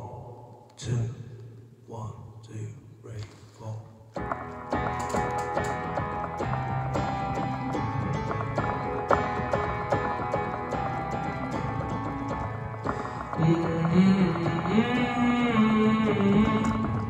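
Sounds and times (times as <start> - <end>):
guitar strummed: 4.2 - 17.0.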